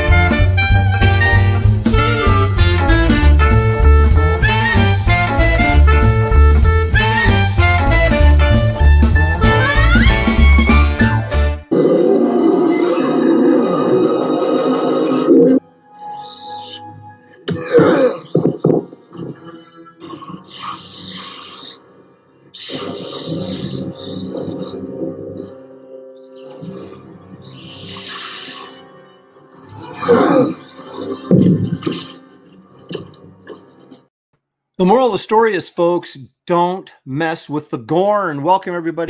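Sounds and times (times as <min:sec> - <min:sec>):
dramatic orchestral music: 0:00.0 - 0:11.7
monster growling roar: 0:11.7 - 0:15.6, 0:20.0 - 0:21.8, 0:22.6 - 0:25.6, 0:29.6 - 0:32.2
creature hissing and growling: 0:20.0 - 0:21.8, 0:22.6 - 0:25.6, 0:26.2 - 0:29.0.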